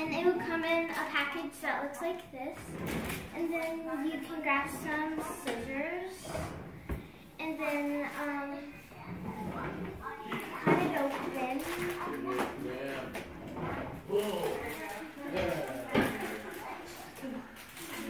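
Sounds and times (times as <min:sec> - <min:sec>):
things clattering on kitchen counter: 0:08.9 - 0:16.9.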